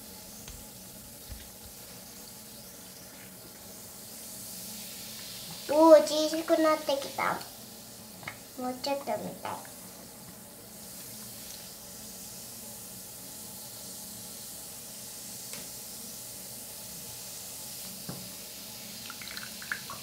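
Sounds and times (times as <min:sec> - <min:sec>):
bath ball fizzing under water: 0:03.0 - 0:20.0.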